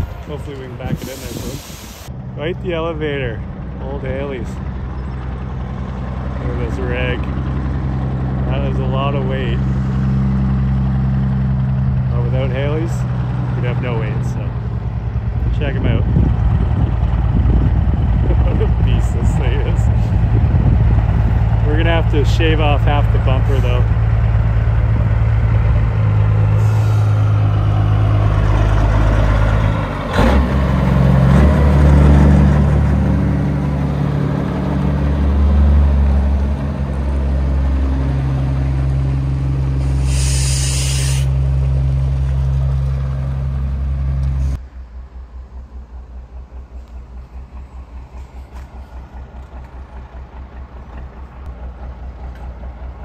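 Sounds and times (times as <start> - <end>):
diesel engine idling: 0.0 - 53.0
diesel truck engine under load: 0.0 - 53.0
air brake hiss: 0.9 - 2.1, 26.6 - 27.2, 39.8 - 41.4.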